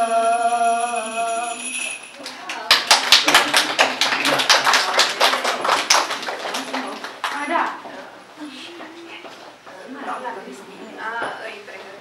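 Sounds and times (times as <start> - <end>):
people applauding: 2.2 - 7.8.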